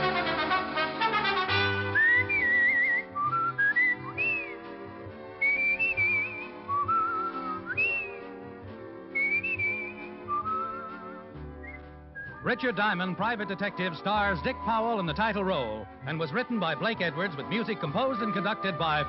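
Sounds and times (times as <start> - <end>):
soft orchestral accompaniment: 0.0 - 19.0
whistled melody: 1.5 - 19.0.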